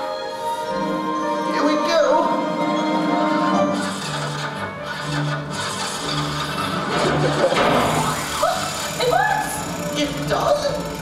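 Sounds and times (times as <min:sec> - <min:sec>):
wooden prop rasping and rubbing: 0:03.3 - 0:11.0.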